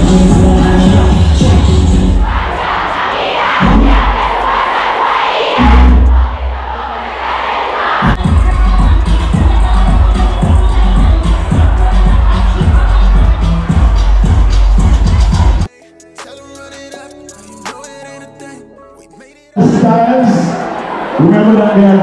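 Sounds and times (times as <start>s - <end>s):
loud music with heavy bass: 0.0s - 4.7s, 5.6s - 7.0s, 8.0s - 22.0s
crowd shouting and cheering: 0.0s - 18.4s, 19.6s - 22.0s.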